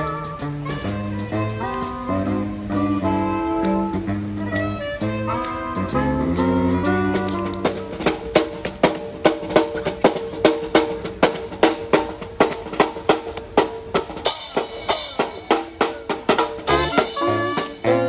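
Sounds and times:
snare drum beat: 5.0 - 18.0.

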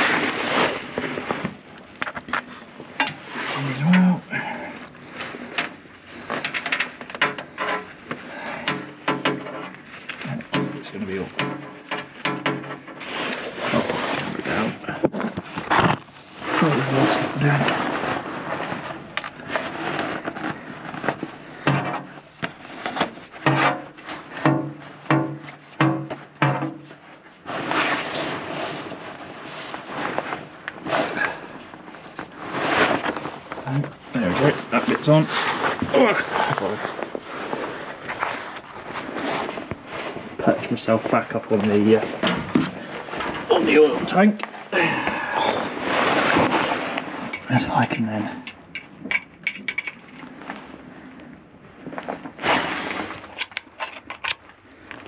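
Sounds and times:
background voices: 13.7 - 17.9, 33.6 - 37.0, 40.4 - 45.8
metal clicks and scraping: 53.2 - 54.5.

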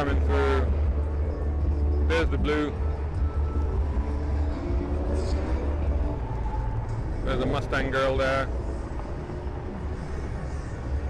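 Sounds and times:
low engine rumble: 0.0 - 11.0.

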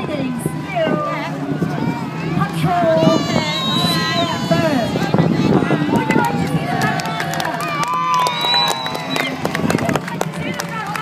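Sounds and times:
crowd voices and calls: 0.0 - 11.0.

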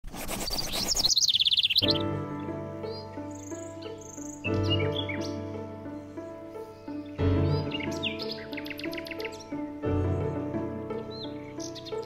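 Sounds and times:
songbird singing: 0.4 - 12.0
soft sustained music: 1.8 - 12.0.

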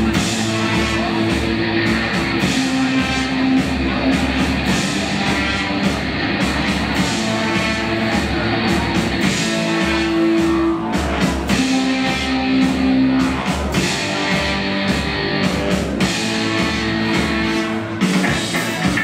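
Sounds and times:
rock band playing live: 0.0 - 19.0.

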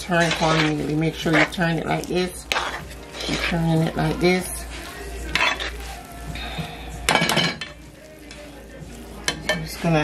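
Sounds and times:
metal utensil scraping a pot: 0.0 - 6.0.

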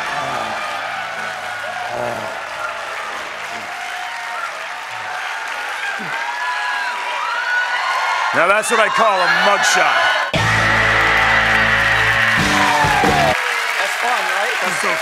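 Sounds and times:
audience applauding: 0.0 - 15.0.

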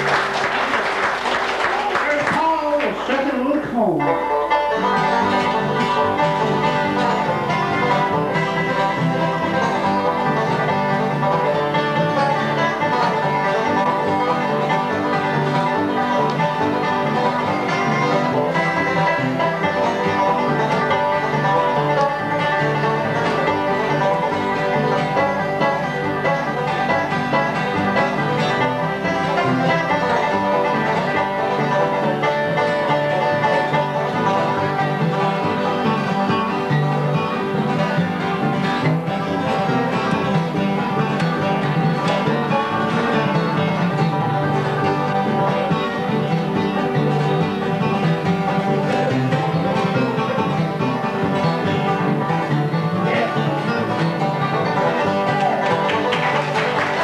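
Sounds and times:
banjo picking: 0.0 - 57.0
bluegrass band playing: 0.0 - 57.0.

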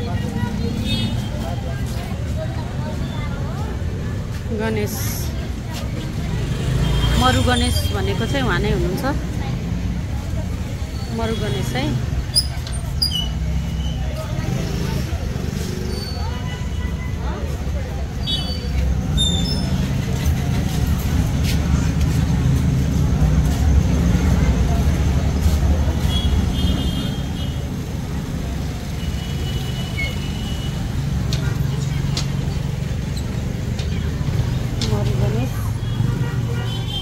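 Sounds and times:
street noise rumble: 0.0 - 37.0
indistinct voices: 29.9 - 37.0.

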